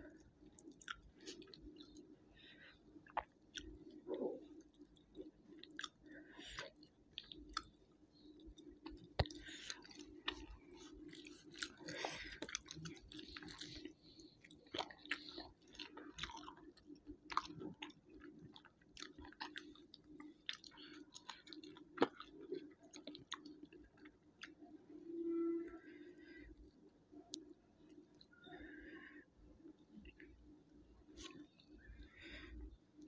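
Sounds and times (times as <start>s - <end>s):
person chewing food: 0.0s - 24.8s
low steady hum: 0.0s - 33.0s.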